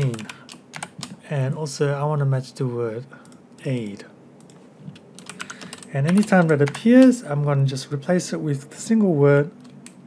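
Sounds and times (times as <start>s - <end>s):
computer keyboard typing: 0.0s - 1.2s, 4.4s - 7.2s.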